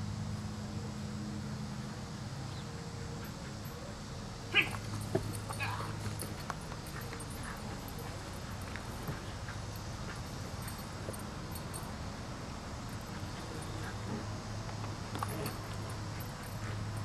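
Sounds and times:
dog yipping: 0:04.5 - 0:04.8.

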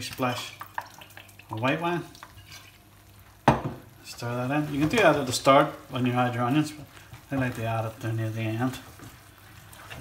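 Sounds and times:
risotto sizzling: 0:00.0 - 0:10.0
spatula scraping pan: 0:02.2 - 0:02.8.

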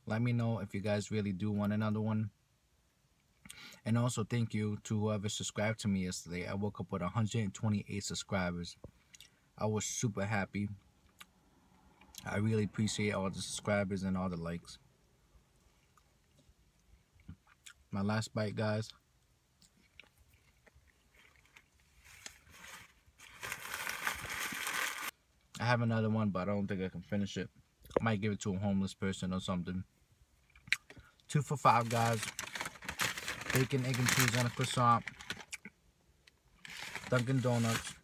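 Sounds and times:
faint rustling: 0:20.2 - 0:25.1
paper bag crinkling: 0:21.2 - 0:25.1, 0:31.6 - 0:35.5, 0:36.6 - 0:38.0.

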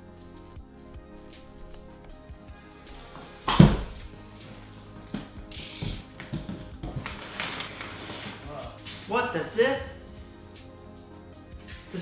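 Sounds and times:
packing paper crinkling: 0:07.0 - 0:08.4.

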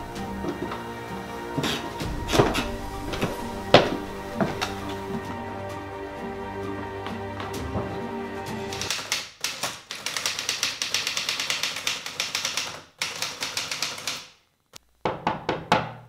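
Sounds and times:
held music chord: 0:00.0 - 0:08.9
typewriter keys clacking: 0:08.7 - 0:14.3.

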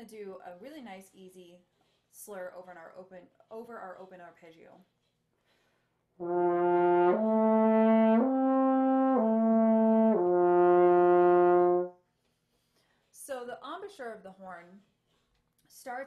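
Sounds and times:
french horn slurring arpeggio: 0:06.2 - 0:11.9.

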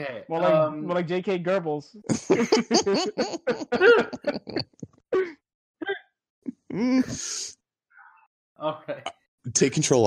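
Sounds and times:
people laughing: 0:02.1 - 0:04.9.

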